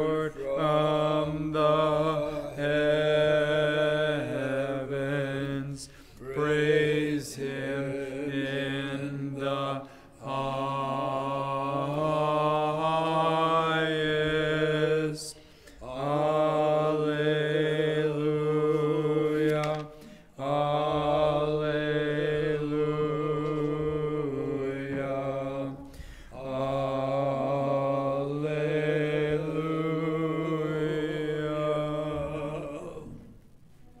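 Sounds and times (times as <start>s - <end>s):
liturgical chant singing: 0.0s - 34.0s.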